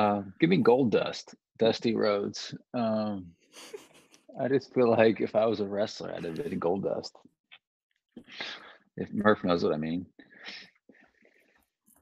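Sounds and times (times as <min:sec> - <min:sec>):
faint breathing: 0:08.2 - 0:08.9.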